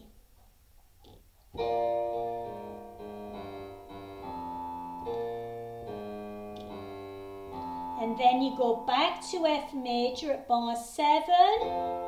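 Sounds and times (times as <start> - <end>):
digital piano chords: 1.5 - 12.0.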